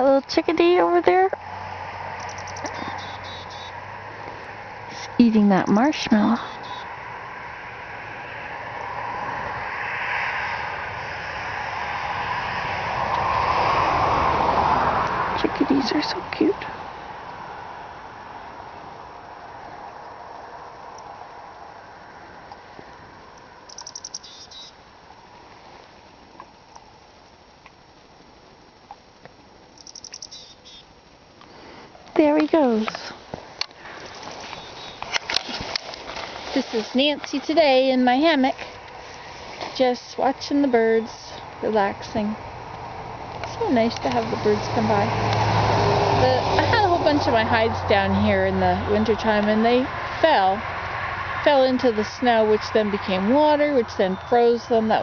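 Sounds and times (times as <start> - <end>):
chickadee calling: 2.2 - 3.8, 4.9 - 7.0, 23.7 - 24.8, 29.8 - 31.0, 34.4 - 35.1, 54.0 - 54.6
faint background hiss: 15.4 - 45.0.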